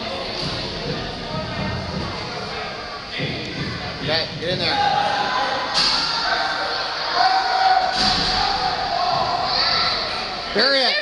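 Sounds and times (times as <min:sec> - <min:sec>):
shouting voices echoing: 0:04.4 - 0:11.0.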